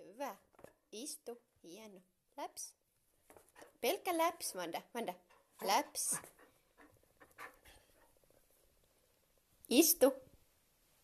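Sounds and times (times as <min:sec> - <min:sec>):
dog panting: 0:05.2 - 0:08.3.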